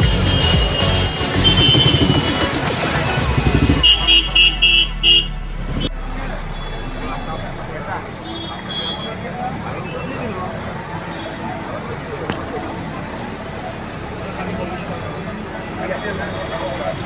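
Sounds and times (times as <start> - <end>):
people's voices: 0.0 - 17.0
vehicle horn beeps: 0.1 - 10.2
traffic on a flooded road: 0.1 - 17.0.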